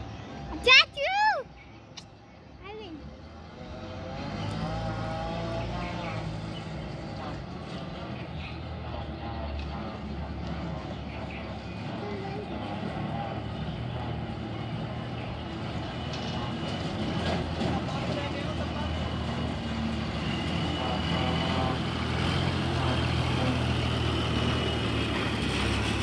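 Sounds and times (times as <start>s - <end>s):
combine harvester diesel engine: 2.7s - 26.0s.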